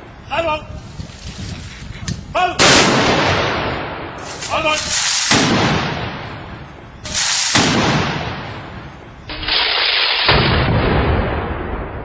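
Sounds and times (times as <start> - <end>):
gunshot echo: 2.6 - 4.2, 4.8 - 12.0
rifle shots volley: 2.6 - 8.8.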